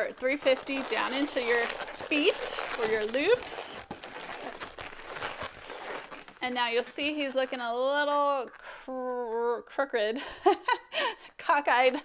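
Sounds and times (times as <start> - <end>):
balloons rubbing together: 0.0 - 8.9.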